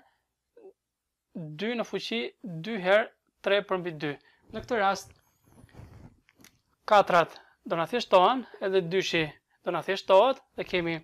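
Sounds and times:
man speaking: 0:01.4 - 0:05.1, 0:06.9 - 0:11.0.

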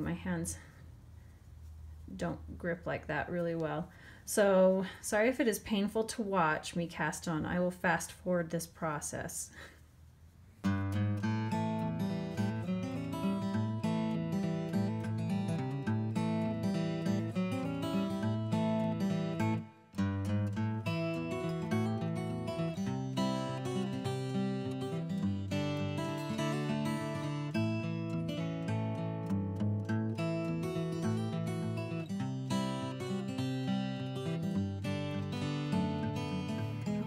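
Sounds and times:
acoustic guitar music: 0:10.6 - 0:37.0.

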